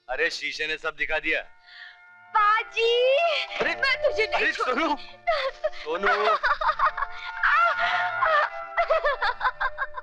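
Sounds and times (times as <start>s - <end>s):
woman giggling and squealing: 5.3s - 10.0s.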